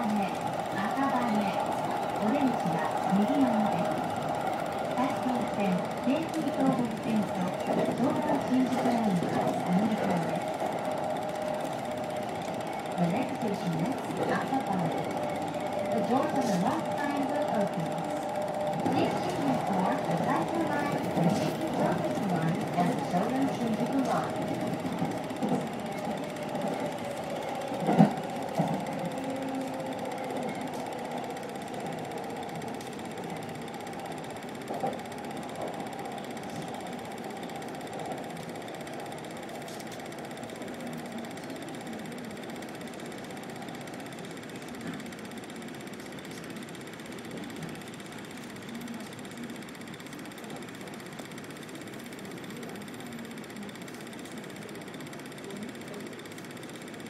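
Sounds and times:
electric train motor whine: 0:00.0 - 0:57.0.

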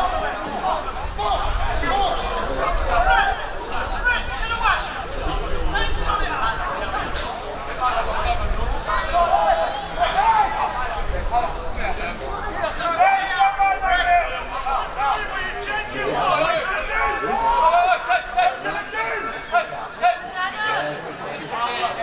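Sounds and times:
voices talking and calling out: 0:00.0 - 0:22.0.

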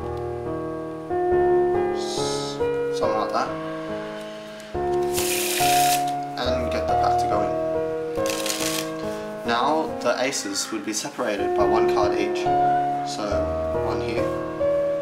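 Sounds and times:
instrumental background music: 0:00.0 - 0:15.0
playing cards shuffling: 0:04.9 - 0:06.2, 0:08.2 - 0:09.1.

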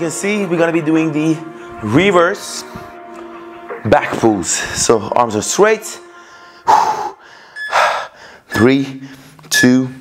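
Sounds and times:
faint background music: 0:00.0 - 0:07.8, 0:08.4 - 0:10.0
man breathing sharply: 0:06.0 - 0:09.5.

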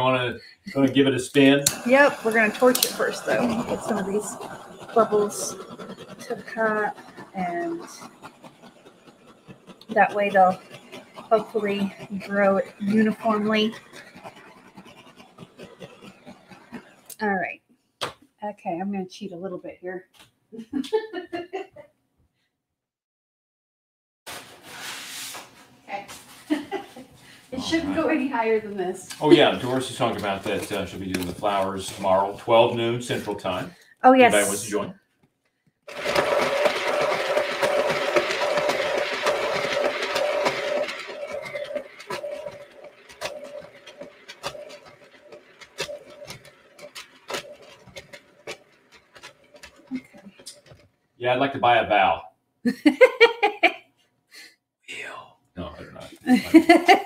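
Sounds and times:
turntable whirring: 0:00.0 - 0:17.5, 0:25.4 - 0:34.9, 0:35.9 - 0:50.9, 0:55.9 - 0:57.0
hand scratching on canvas: 0:01.8 - 0:17.1, 0:24.3 - 0:26.5
scattered clicks: 0:35.9 - 0:50.8.

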